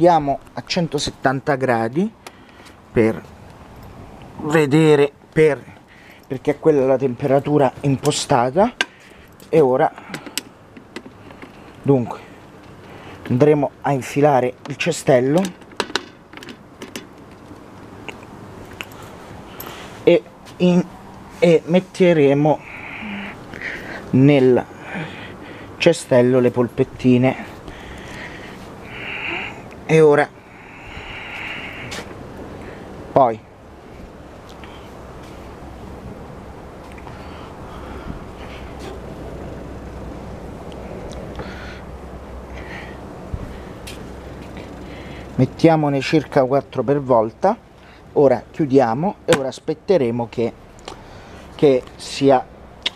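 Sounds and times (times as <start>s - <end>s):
faint steady background noise: 0.0s - 52.9s
low steady hum: 0.0s - 52.9s.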